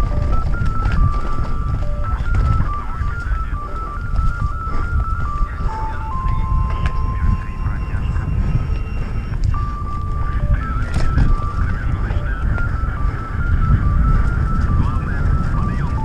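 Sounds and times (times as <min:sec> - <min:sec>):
bike trail rumble: 0:00.0 - 0:16.0
thin high melody: 0:00.0 - 0:16.0
wind on microphone: 0:00.0 - 0:16.0.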